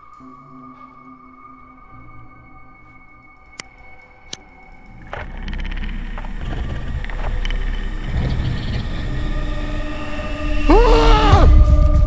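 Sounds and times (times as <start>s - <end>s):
low rumbling drone: 4.5s - 12.0s
loud cry: 10.6s - 11.6s.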